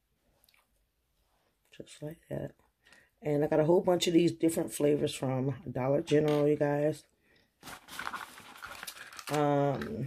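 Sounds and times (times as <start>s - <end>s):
rustling of small items handled: 7.5s - 10.0s.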